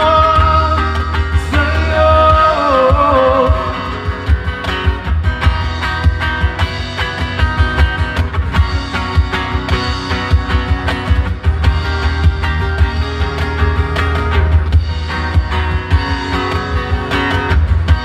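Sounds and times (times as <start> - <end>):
rock guitar: 0.0 - 18.0
steady percussion beat: 0.0 - 18.0.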